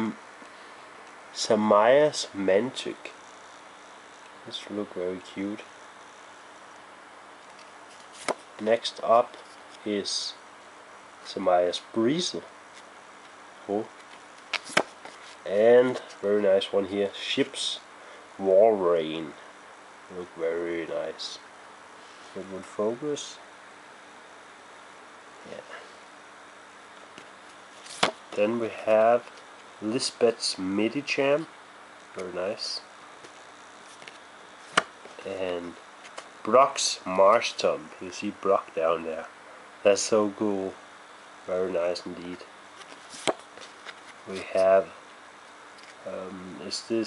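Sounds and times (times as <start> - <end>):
trading cards clicking: 14.0 - 15.0
card sliding click: 14.5 - 14.9.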